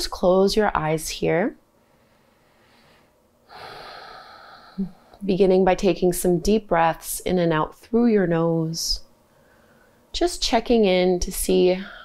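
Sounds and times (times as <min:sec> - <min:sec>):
woman inhaling deeply: 0:01.9 - 0:05.2.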